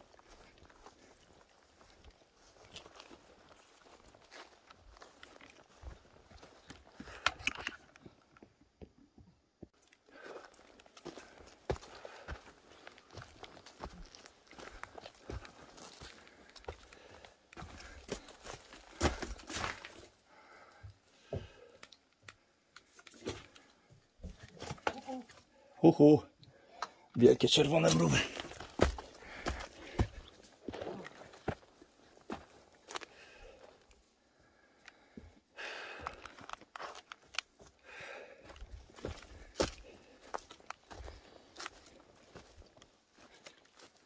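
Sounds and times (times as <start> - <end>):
footsteps on grass and forest floor: 0.0 - 8.2, 9.7 - 20.2, 27.3 - 34.1, 35.6 - 44.0.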